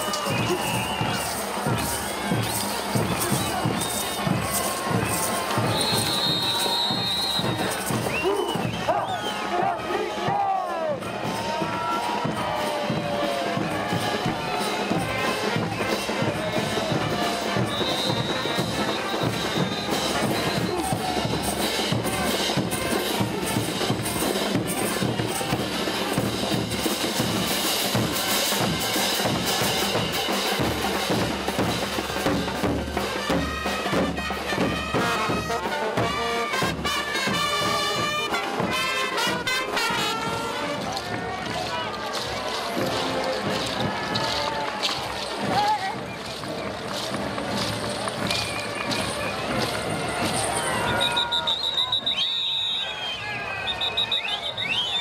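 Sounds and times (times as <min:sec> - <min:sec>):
brass band playing dance music: 0:00.0 - 0:46.0, 0:46.8 - 0:54.2
bass and snare drums beat: 0:00.0 - 0:52.1.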